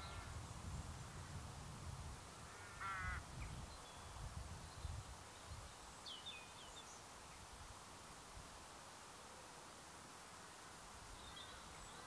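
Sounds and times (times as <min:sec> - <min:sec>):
crow cawing: 0:02.5 - 0:03.2.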